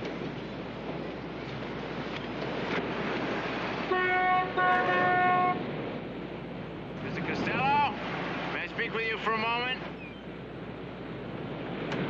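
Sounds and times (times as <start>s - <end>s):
car horn tooting: 3.9s - 5.6s
steady background rush: 5.5s - 12.0s.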